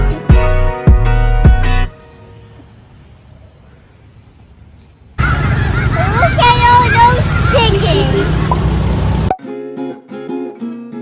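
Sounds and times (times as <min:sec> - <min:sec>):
street traffic rumble: 0:01.9 - 0:09.4.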